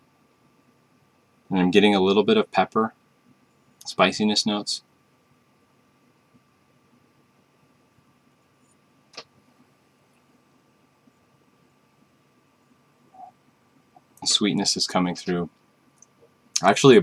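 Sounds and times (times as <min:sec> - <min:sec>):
faint steady whine: 0:00.0 - 0:17.0.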